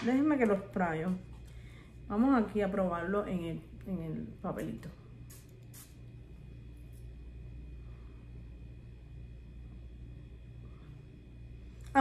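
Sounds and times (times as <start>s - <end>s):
steady low hum: 0.0s - 12.0s
faint high whine: 1.4s - 12.0s.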